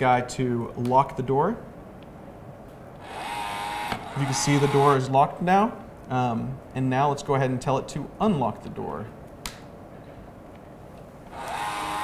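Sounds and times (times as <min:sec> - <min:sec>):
small electric motor whining: 0:03.0 - 0:05.0, 0:11.3 - 0:12.0.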